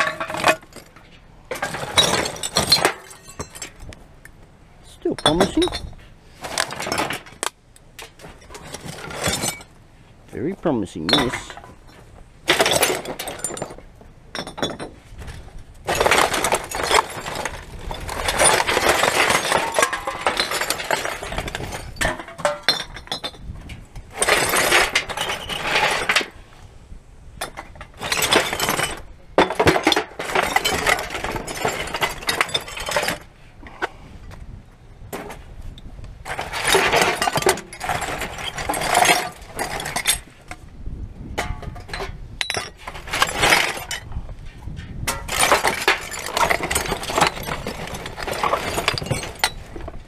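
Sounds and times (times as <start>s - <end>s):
items clinking together: 11.0s - 15.0s, 45.1s - 50.0s.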